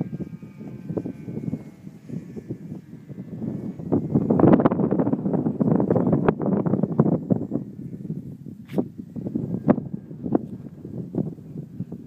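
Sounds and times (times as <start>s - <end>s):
distant model plane motor whine: 0.0s - 12.0s
wind buffeting microphone: 0.0s - 12.0s.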